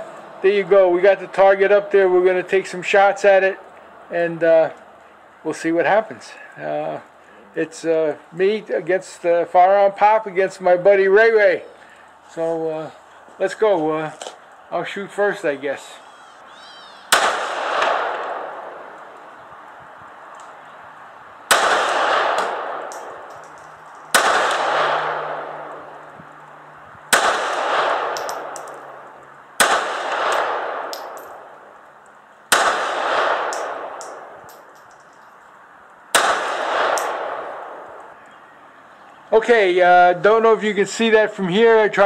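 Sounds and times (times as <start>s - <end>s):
pistol shots with echo: 17.1s - 18.6s, 21.5s - 25.6s, 27.1s - 28.9s, 29.6s - 31.5s, 32.5s - 34.9s, 36.1s - 37.9s.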